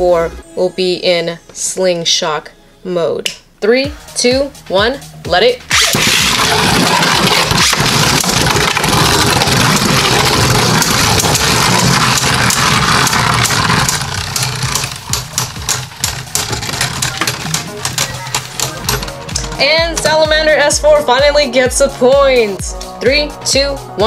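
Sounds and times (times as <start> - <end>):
spinning tops clicking and rattling: 5.7 - 20.2
spinning tops whirring on plastic: 5.7 - 20.2.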